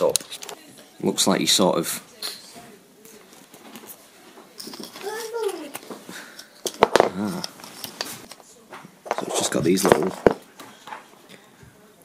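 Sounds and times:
handling noise: 3.1 - 11.2
puzzle pieces knocking: 6.6 - 8.1, 9.0 - 10.4.

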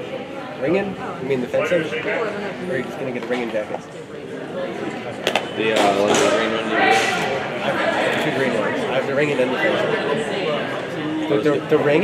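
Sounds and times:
people talking in a gym hall: 0.0 - 12.0.

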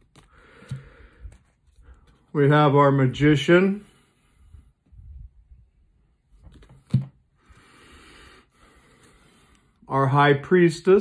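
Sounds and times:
card tap: 6.5 - 7.2.

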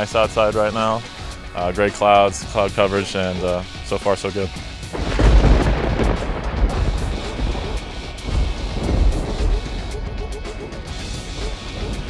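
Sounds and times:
background music: 0.0 - 12.0
thunder rumbling: 4.9 - 12.0.

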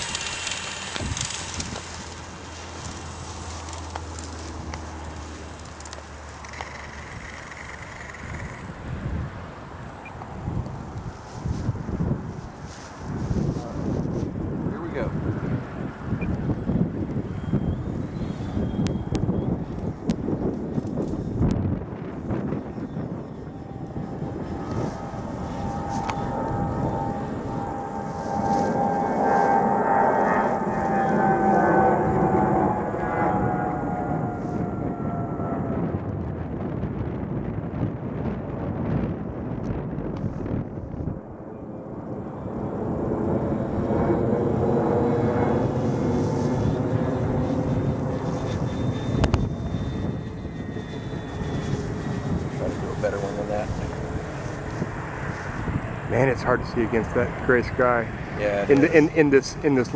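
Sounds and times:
model plane electric motors whining: 0.0 - 9.1, 15.4 - 37.1, 42.0 - 59.9.

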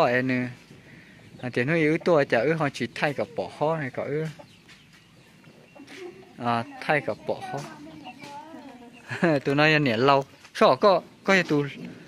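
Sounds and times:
chicken clucking: 0.0 - 10.5
woman's voice: 5.8 - 9.2.

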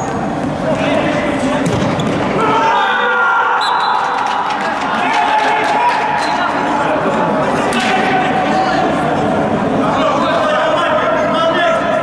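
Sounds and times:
ball kicked and bouncing: 1.6 - 2.2
people shouting: 2.4 - 6.2.

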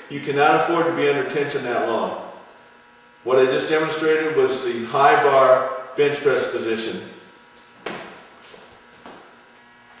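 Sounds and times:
low room hum: 0.0 - 10.0
soft footsteps: 7.7 - 10.0.

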